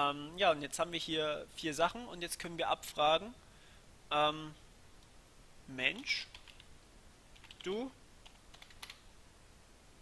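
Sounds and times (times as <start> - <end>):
faint keyboard keystrokes: 7.3 - 9.0.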